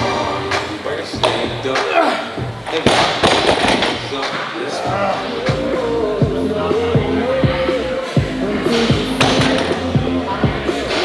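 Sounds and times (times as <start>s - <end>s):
background music with vocals: 0.0s - 11.0s.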